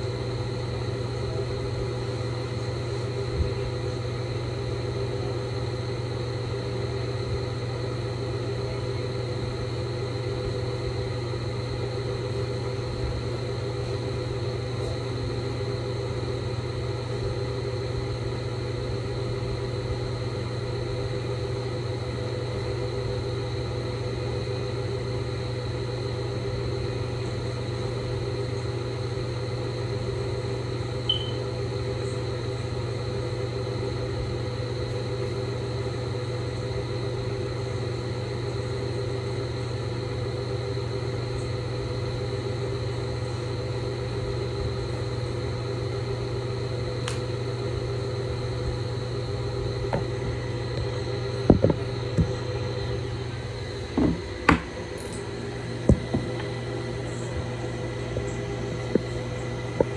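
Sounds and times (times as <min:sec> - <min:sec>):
faint high whine: 0:00.0 - 0:59.9
mechanical hum: 0:00.0 - 0:59.9
short high chirp: 0:31.1 - 0:31.4.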